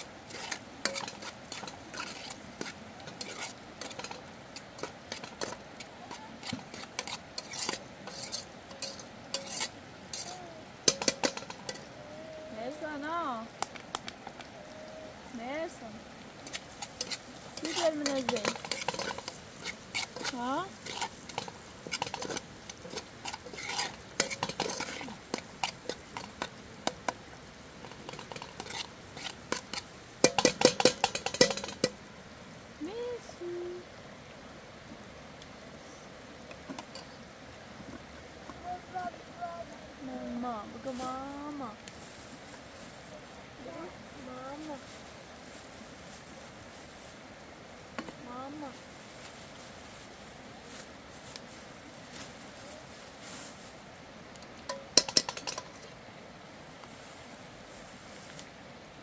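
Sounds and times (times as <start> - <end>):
food sizzling: 0.0 - 53.7, 54.3 - 56.0
spoon scraping a pot: 0.3 - 11.9, 16.4 - 27.2, 27.8 - 32.0.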